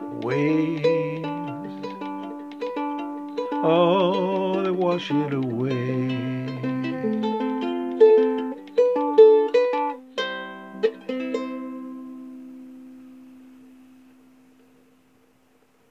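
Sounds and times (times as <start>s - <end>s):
ukulele playing: 0.0s - 14.5s.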